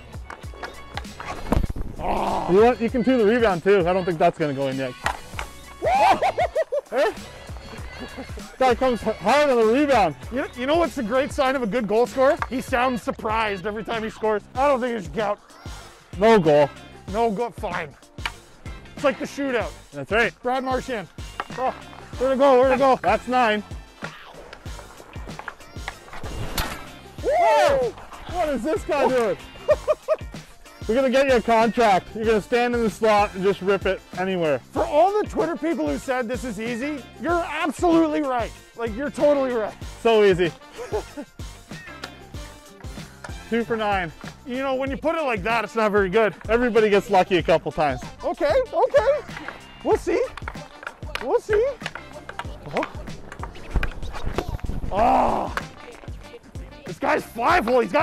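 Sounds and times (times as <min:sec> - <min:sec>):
background music with steady beat: 0:00.0 - 0:58.0
skate blades scraping on ice: 0:00.3 - 0:01.7, 0:20.8 - 0:30.5, 0:48.9 - 0:58.0
hockey stick striking puck: 0:50.3 - 0:54.5.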